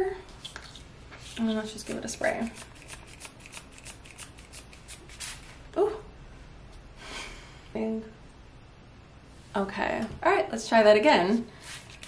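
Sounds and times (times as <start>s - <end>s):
spray bottle spraying: 2.6s - 5.5s, 11.6s - 12.0s.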